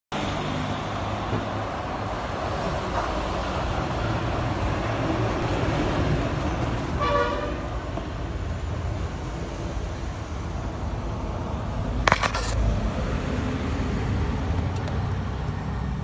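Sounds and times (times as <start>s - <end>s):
low rumble of motor traffic: 0.2s - 16.0s.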